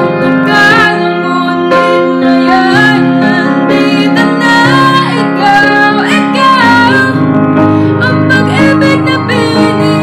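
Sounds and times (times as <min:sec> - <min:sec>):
piano chords: 0:00.0 - 0:10.0
woman singing a ballad: 0:00.0 - 0:10.0.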